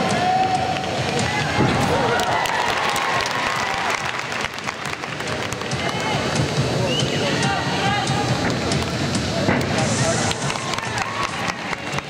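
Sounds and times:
crowd applauding: 0:00.6 - 0:06.5, 0:10.0 - 0:12.0
faint crowd voices: 0:05.0 - 0:12.0.

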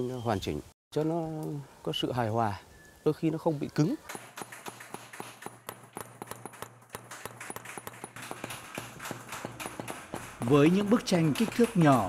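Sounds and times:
hammer tapping metal punch: 0:04.1 - 0:12.0.

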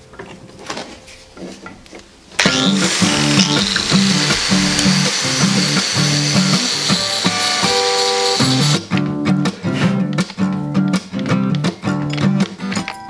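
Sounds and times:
background music: 0:00.0 - 0:13.0
angle grinder wire brush whine: 0:02.4 - 0:08.8.

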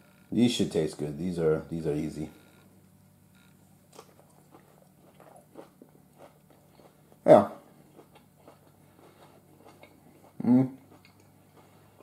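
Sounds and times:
low steady hum: 0:00.0 - 0:12.0
person chewing: 0:03.9 - 0:12.0.

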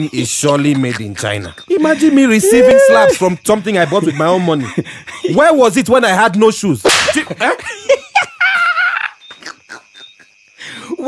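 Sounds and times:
laughter: 0:00.5 - 0:05.6, 0:06.9 - 0:10.4.

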